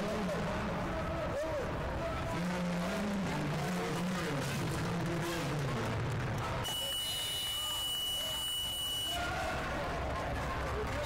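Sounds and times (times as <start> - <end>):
high-pitched timer buzzer: 6.7 - 9.2.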